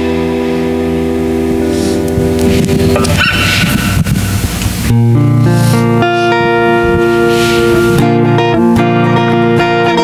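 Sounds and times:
band chord ringing out: 0.0s - 8.6s
guitar and mandolin handling noise: 1.7s - 10.0s.

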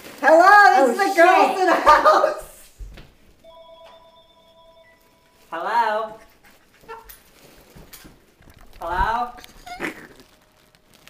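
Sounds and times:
faint multi-pitched ringing tone: 3.4s - 6.0s.

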